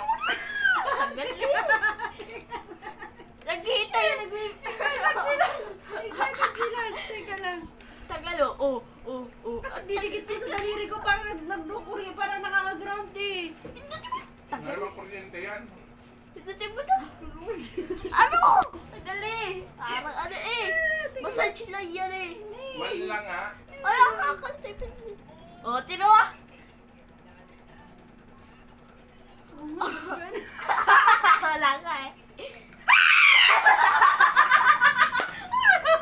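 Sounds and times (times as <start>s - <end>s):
woman screaming: 0.0s - 1.0s, 32.9s - 33.8s
woman laughing: 0.0s - 3.3s, 33.2s - 36.0s.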